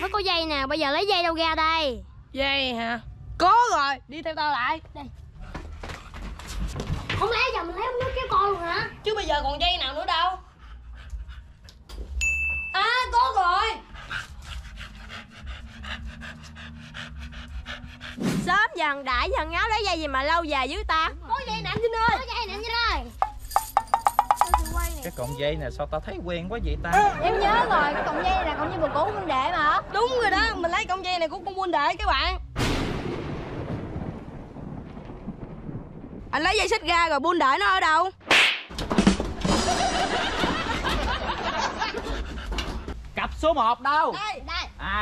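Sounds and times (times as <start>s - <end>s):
dog panting: 9.8s - 11.9s, 13.4s - 18.2s, 42.0s - 43.0s
thunder-like rumble: 32.5s - 37.4s
sudden boom: 32.6s - 36.3s.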